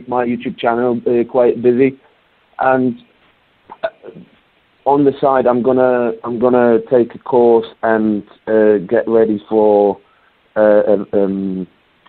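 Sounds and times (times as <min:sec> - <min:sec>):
man talking: 0:00.0 - 0:10.0, 0:10.6 - 0:11.8.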